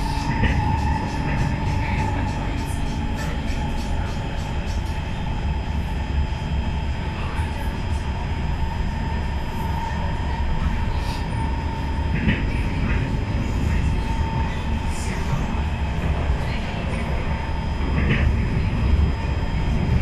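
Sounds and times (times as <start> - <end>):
train wheels rumbling on track: 0.0 - 20.0.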